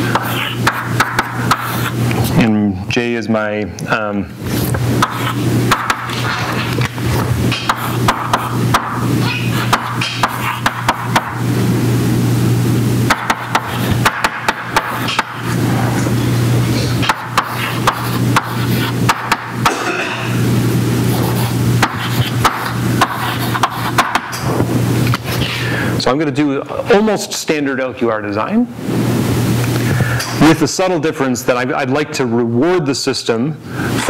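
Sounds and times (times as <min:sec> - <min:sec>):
chalk tapping and scraping: 0:00.0 - 0:02.0, 0:04.6 - 0:11.3, 0:13.1 - 0:15.5, 0:17.0 - 0:19.4, 0:21.0 - 0:24.4
low hum: 0:04.3 - 0:23.8.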